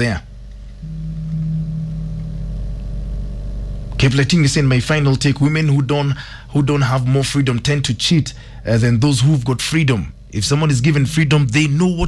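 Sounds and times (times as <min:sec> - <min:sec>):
low droning hum: 0:00.0 - 0:12.0
held low tone: 0:00.8 - 0:03.9, 0:10.4 - 0:12.0.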